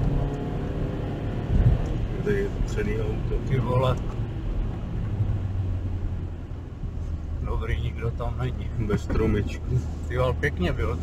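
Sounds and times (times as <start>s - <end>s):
car engine accelerating: 0.0s - 11.0s
tyre and road rumble: 0.0s - 11.0s.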